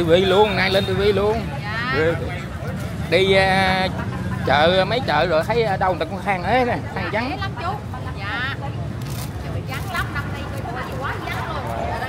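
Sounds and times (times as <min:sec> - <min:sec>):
motorbike and street traffic rumble: 0:00.0 - 0:12.0
voices talking: 0:00.0 - 0:12.0.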